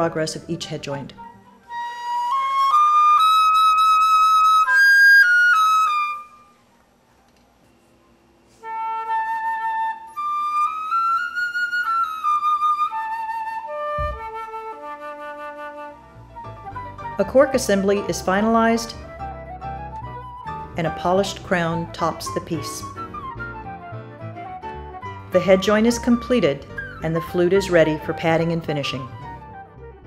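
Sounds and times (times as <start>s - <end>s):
flute melodic phrases: 1.2s - 6.6s, 8.5s - 30.0s.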